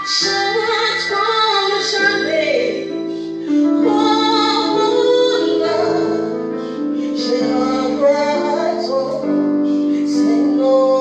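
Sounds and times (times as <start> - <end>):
woman singing slow worship song: 0.0 - 11.0.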